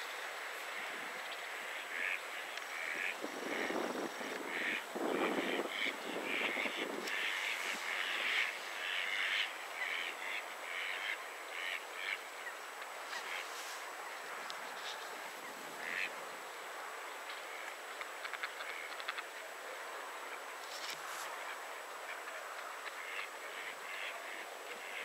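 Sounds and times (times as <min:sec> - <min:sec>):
rushing wind-like noise: 0:00.0 - 0:18.3
ducks calling: 0:00.6 - 0:12.5, 0:15.8 - 0:16.1.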